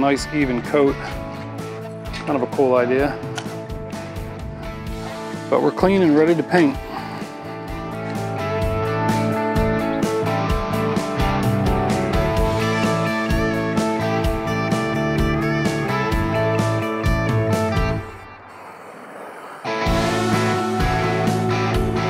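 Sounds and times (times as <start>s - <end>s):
guitar music with steady beat: 0.0s - 6.2s, 7.0s - 18.2s, 19.8s - 22.0s.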